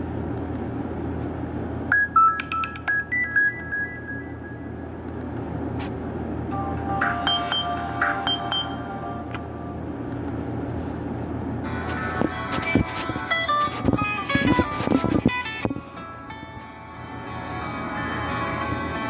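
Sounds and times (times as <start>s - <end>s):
ringtone melody from small loudspeaker: 1.9s - 4.9s, 6.5s - 9.3s.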